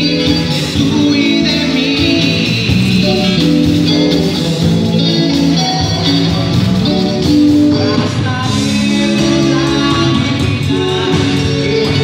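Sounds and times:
bass and drums: 0.0 - 12.0
electric guitars: 0.0 - 12.0.

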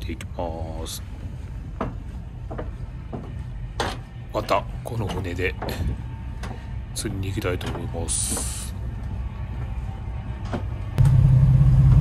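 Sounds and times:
boat engine rumbling: 11.0 - 12.0.

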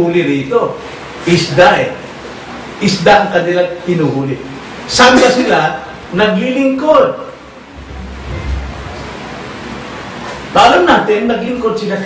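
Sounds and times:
steady background hiss: 0.0 - 12.0
low rumble: 7.7 - 9.9.

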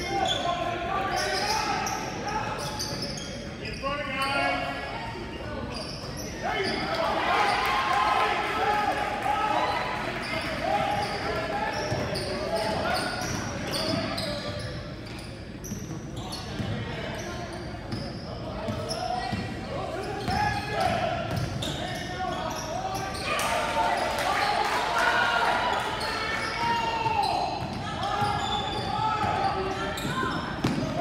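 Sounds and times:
sneakers squeaking: 0.0 - 7.8, 9.6 - 31.0
crowd and players shouting: 6.3 - 14.0, 19.3 - 31.0.

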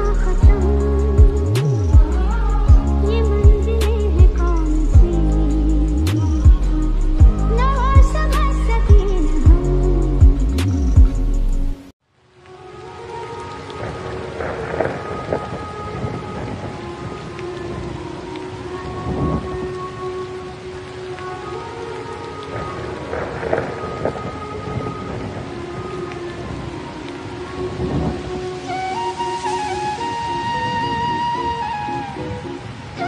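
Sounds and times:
steady rain: 0.0 - 33.0
thunder rumbling: 13.4 - 20.0.

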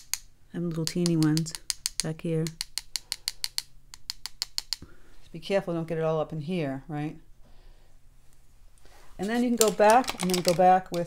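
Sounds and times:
paintbrush tapping on another brush: 0.1 - 4.9.

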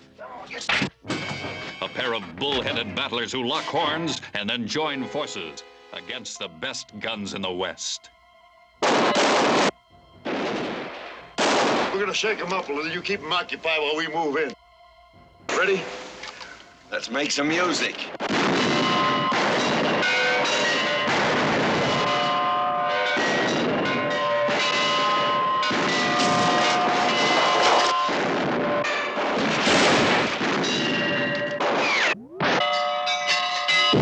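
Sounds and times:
film music: 0.0 - 34.0
ringing bell-like tones: 1.1 - 8.8, 12.0 - 29.2, 30.6 - 34.0
gunshots with echoes: 8.8 - 12.3, 18.2 - 22.5, 23.1 - 32.8.

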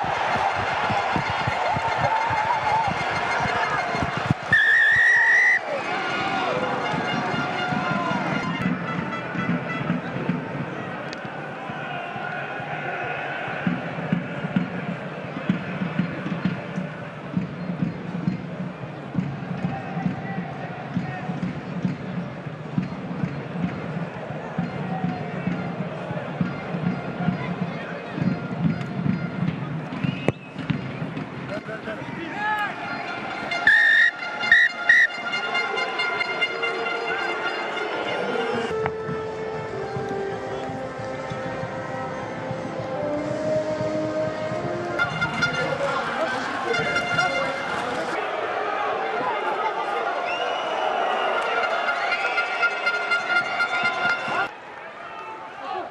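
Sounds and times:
music: 0.0 - 4.6, 5.5 - 31.5, 32.9 - 48.2, 51.4 - 54.5
crowd voices and chanting: 0.0 - 55.9
loud horn blasts: 1.1 - 5.7, 6.3 - 10.4, 33.1 - 48.2, 51.2 - 54.5.

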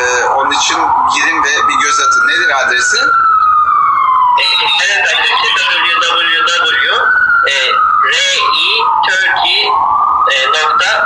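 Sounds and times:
emergency vehicle siren wailing: 0.0 - 11.0.

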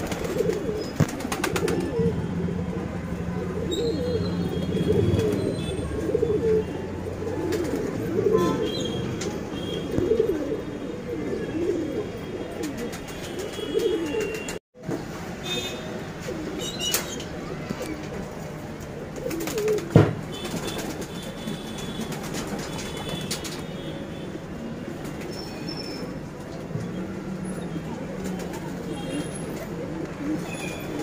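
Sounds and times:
pigeons cooing: 0.0 - 14.5, 19.1 - 20.0, 28.2 - 31.0.

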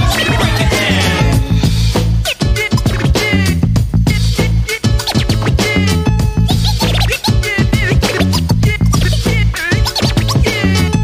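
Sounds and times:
record scratching: 0.0 - 5.8, 6.5 - 11.0
hip hop beat with heavy bass: 0.0 - 11.0.

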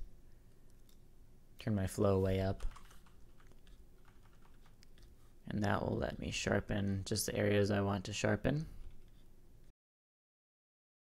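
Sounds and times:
computer keyboard keystrokes: 2.6 - 5.1.

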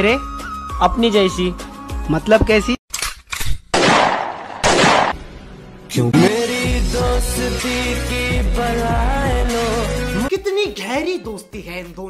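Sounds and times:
gunshots: 3.7 - 5.2.

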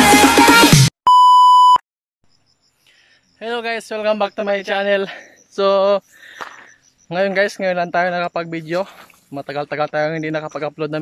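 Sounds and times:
high test-tone beep: 1.1 - 1.8.

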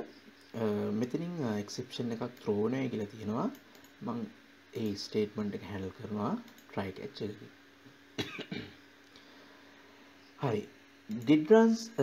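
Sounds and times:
faint steady hum: 0.0 - 12.0
person coughing: 8.2 - 8.8.

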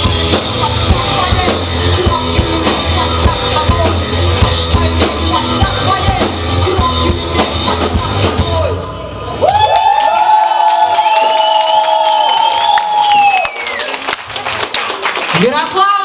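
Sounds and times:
rock band playing: 0.0 - 9.5.

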